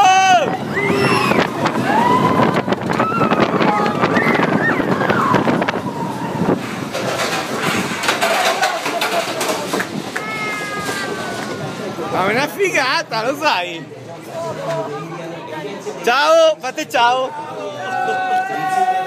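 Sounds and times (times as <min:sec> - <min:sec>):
roller coaster rattling on track: 0:00.0 - 0:14.9
wind on microphone: 0:00.4 - 0:08.6
riders shouting and crying out: 0:08.4 - 0:11.7.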